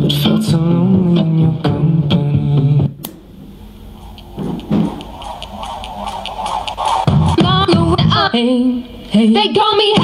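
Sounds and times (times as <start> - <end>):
speaker click: 3.0 - 3.3
pop music from speaker: 5.7 - 10.0.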